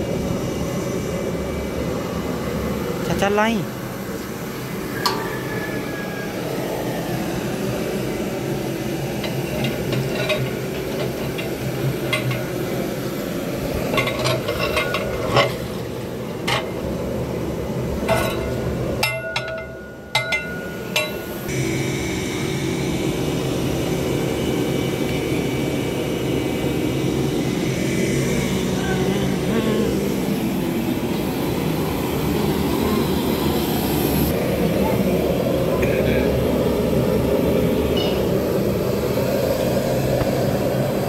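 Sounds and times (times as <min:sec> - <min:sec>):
gas burner hissing: 0:00.0 - 0:41.0.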